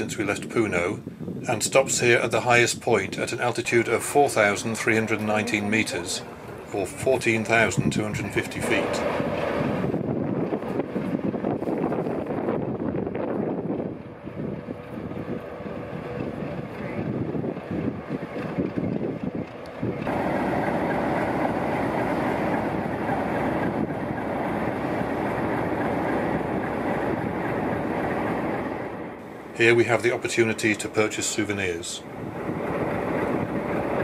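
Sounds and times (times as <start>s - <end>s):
wind on microphone: 0.0s - 29.4s, 32.0s - 34.0s
train mechanical hum: 0.0s - 34.0s
steady loud noise: 1.5s - 34.0s.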